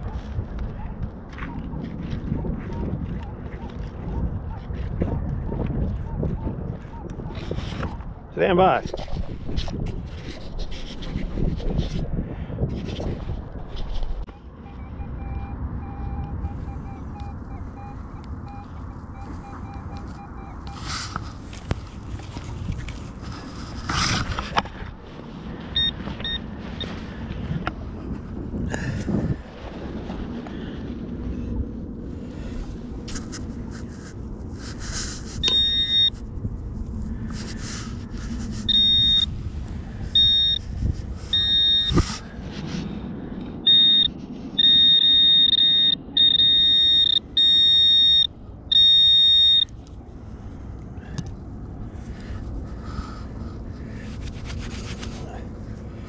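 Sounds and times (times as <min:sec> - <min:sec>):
metal detector beeping: 0:14.3 - 0:21.1, 0:25.7 - 0:27.0, 0:35.4 - 0:36.2, 0:38.6 - 0:39.3, 0:40.1 - 0:40.7, 0:41.3 - 0:42.0, 0:43.6 - 0:49.8
soil scraping and thumps: 0:20.7 - 0:30.8.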